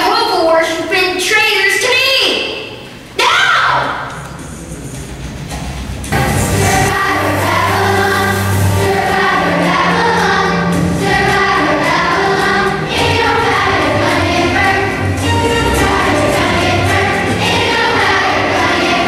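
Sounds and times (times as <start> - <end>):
children's choir singing: 6.1 - 19.0.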